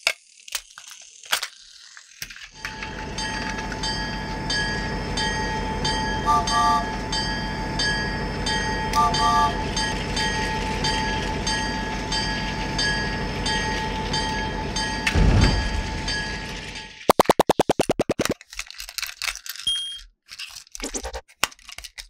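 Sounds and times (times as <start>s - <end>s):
toy train motor whine: 0.0s - 15.2s
train whistle toots: 6.2s - 7.1s, 8.9s - 9.8s.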